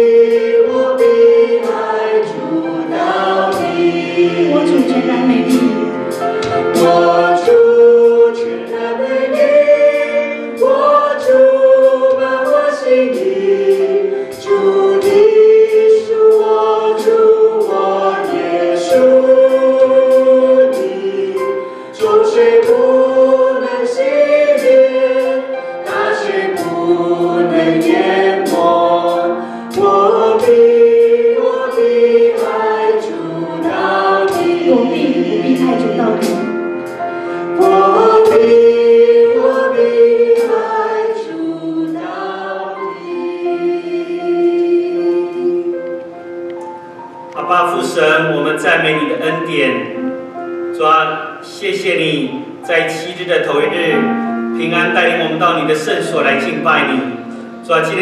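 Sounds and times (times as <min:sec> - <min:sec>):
band accompanying: 0:00.0 - 0:58.0
choir singing worship song: 0:00.0 - 0:58.0
drums steady beat: 0:03.0 - 0:08.2, 0:34.3 - 0:38.7.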